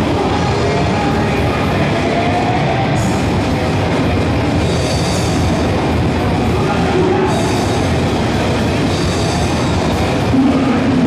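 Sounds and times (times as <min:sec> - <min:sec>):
distorted electric guitars: 0:00.0 - 0:11.0
drums: 0:00.0 - 0:11.0.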